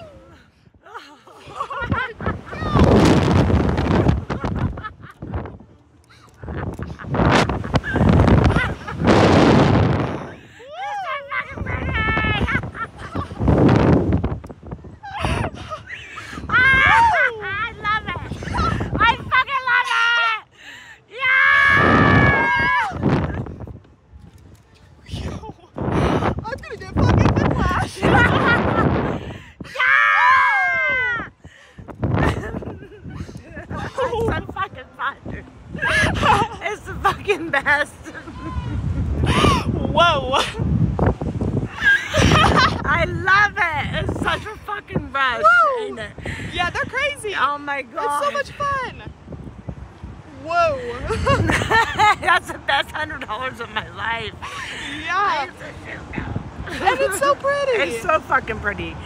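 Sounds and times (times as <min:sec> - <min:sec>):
people screaming and laughing: 0:00.0 - 0:14.0, 0:14.8 - 0:23.7, 0:27.2 - 0:31.4, 0:35.7 - 0:40.7, 0:41.6 - 0:43.0
wind rushing over microphone: 0:00.0 - 0:19.8, 0:21.2 - 0:59.0
woman screaming: 0:16.5 - 0:17.6, 0:21.1 - 0:23.0, 0:29.7 - 0:31.3.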